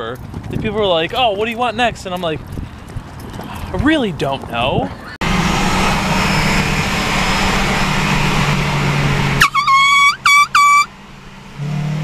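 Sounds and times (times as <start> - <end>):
car engine and road noise: 0.0 - 12.0
high-pitched car horn honks: 9.4 - 11.0.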